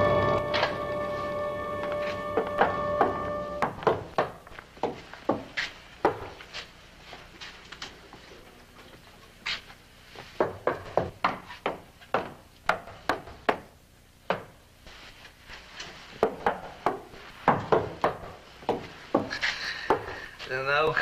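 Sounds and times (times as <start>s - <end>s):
music: 0.0s - 3.9s.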